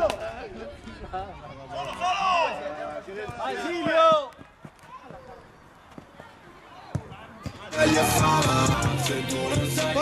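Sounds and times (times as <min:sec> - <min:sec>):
loud music: 0:07.7 - 0:10.0.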